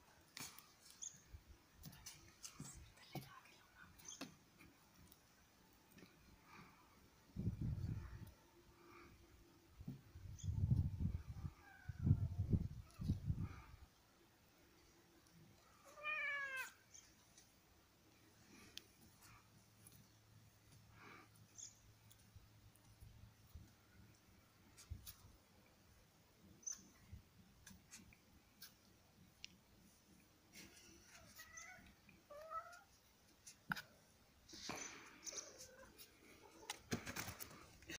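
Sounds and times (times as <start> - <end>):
cat meowing faintly: 15.8 - 16.8, 31.1 - 33.0
cat meowing: 15.9 - 16.8.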